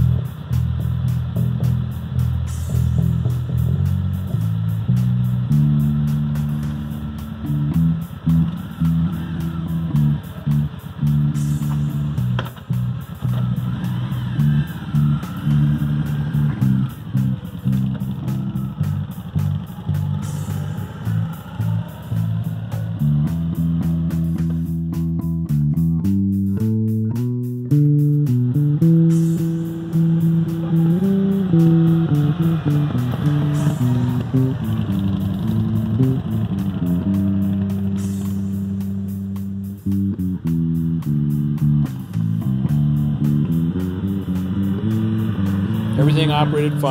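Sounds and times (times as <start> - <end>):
electric bass guitar: 0.0 - 46.9.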